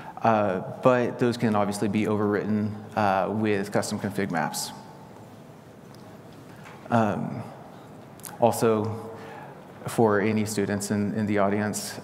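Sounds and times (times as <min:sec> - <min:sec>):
faint room hiss: 0:00.0 - 0:12.0
man saying um: 0:06.9 - 0:07.6.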